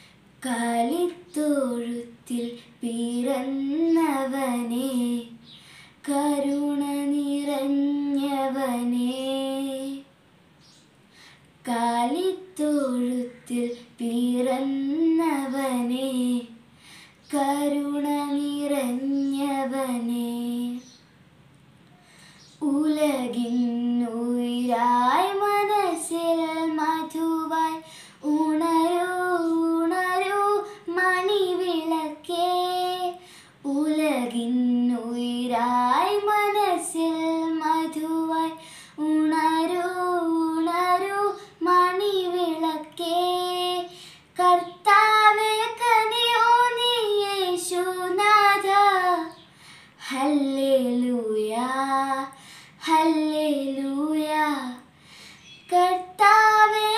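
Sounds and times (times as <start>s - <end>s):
girl singing unaccompanied: 0.0s - 21.1s, 22.2s - 56.9s.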